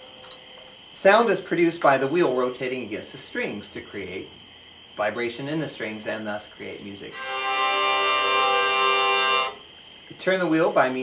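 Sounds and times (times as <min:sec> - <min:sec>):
hurdy-gurdy held note: 0:07.1 - 0:09.6.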